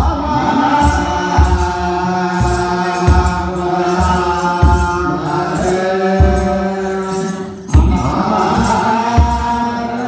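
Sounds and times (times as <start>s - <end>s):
deep drum beats: 0.0s - 10.0s
male voices chanting: 0.0s - 10.0s
sistrum jingling: 0.7s - 10.0s.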